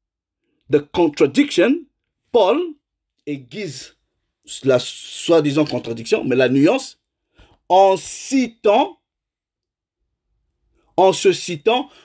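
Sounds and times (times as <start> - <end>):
man speaking: 0.7 - 7.0, 7.7 - 9.0, 11.0 - 12.0.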